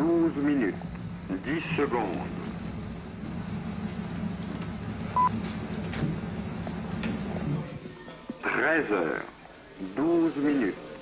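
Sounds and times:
steady low hum: 0.0s - 7.8s.

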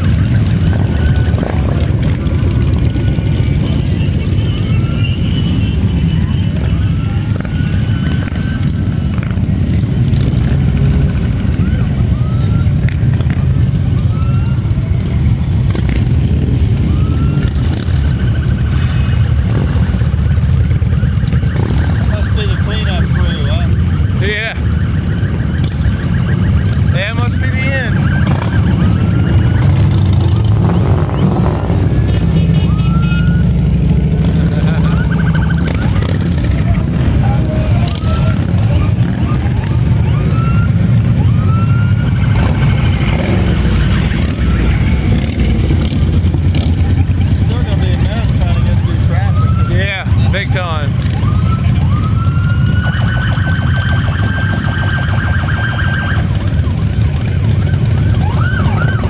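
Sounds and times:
siren-like sliding tones: 0.0s - 59.0s
motorcycles rumbling past: 27.9s - 59.0s.

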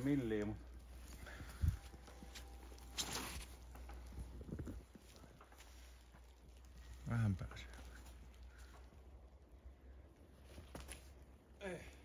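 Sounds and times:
faint footsteps on leaves: 0.0s - 9.0s.

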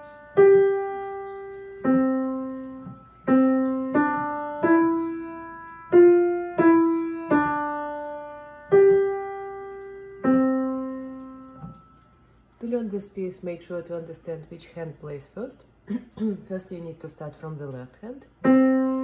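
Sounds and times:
slow piano melody: 0.0s - 12.4s, 18.4s - 19.0s.

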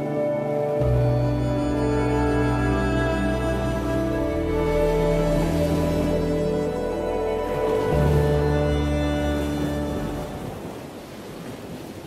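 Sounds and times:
music: 0.0s - 10.7s
waves washing: 0.0s - 12.0s
wind: 0.0s - 12.0s.

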